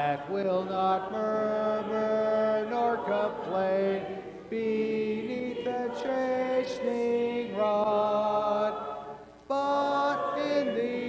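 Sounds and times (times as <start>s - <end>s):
voices singing a hymn a cappella: 0.0s - 11.0s.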